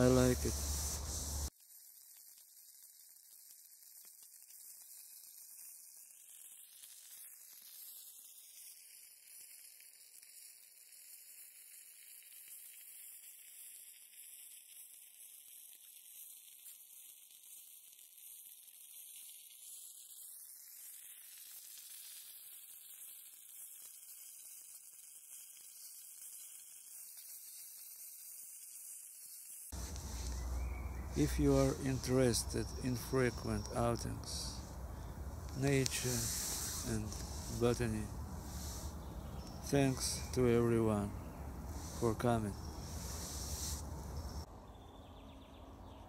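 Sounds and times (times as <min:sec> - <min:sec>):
faint high-pitched hiss: 0:00.0 - 0:45.9.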